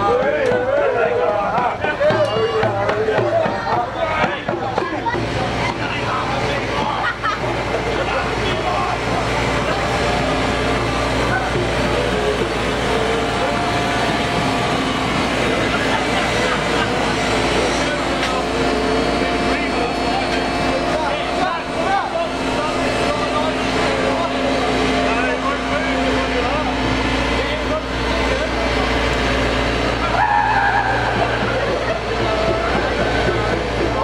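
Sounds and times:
diesel engine running: 0.0s - 34.0s
voices: 0.0s - 34.0s.

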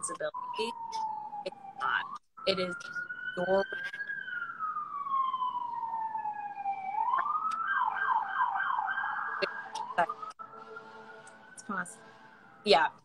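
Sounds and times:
emergency vehicle siren wailing: 0.0s - 13.0s.

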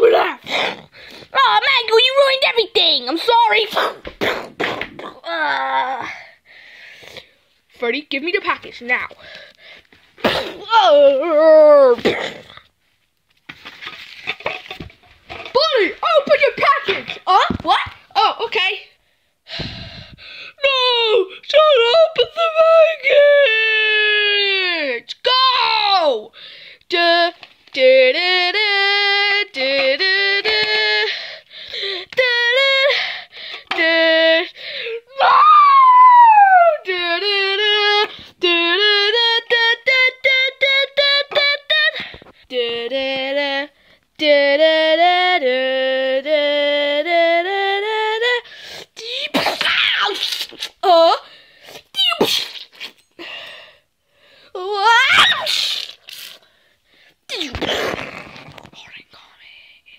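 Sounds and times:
child singing wordless tune: 0.0s - 4.0s, 10.7s - 12.0s, 15.4s - 19.0s, 20.6s - 31.2s, 31.9s - 35.2s, 36.5s - 49.4s
child breathing: 0.8s - 1.4s, 6.0s - 7.5s, 9.1s - 10.0s, 19.0s - 20.6s, 26.3s - 26.8s, 31.0s - 32.1s, 32.9s - 33.7s, 34.5s - 35.1s, 53.2s - 54.6s
high voice squealing: 49.6s - 50.9s, 54.7s - 56.4s.

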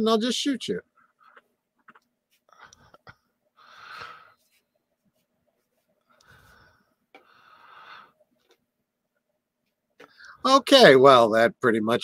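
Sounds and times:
person breathing out softly: 6.2s - 8.2s.

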